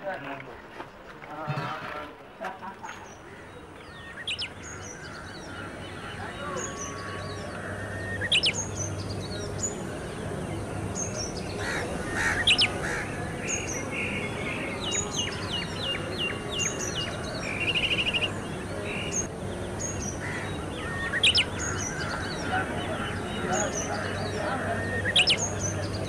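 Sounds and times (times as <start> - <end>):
birds chirping and calling: 2.6 - 26.0.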